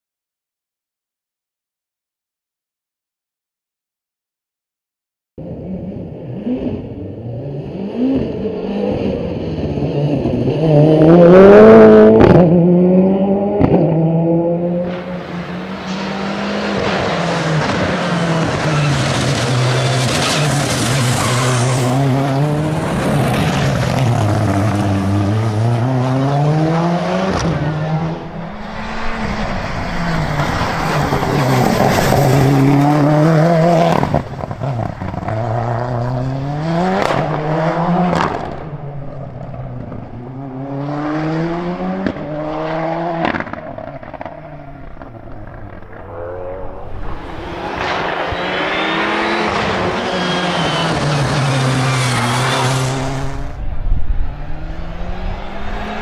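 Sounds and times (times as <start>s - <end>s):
rally car engine revving: 5.4s - 56.0s.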